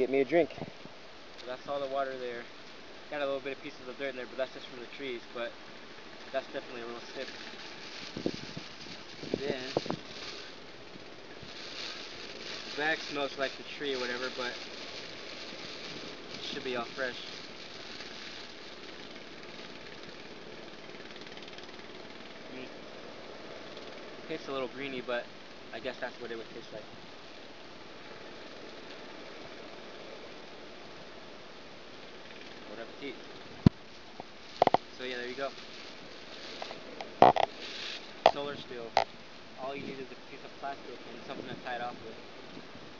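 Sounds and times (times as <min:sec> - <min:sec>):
faint outdoor hiss: 0:00.0 - 0:42.9.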